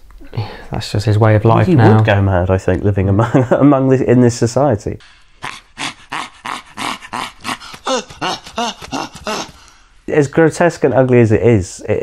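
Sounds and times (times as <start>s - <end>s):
high animal-like yelps: 5.4s - 9.6s.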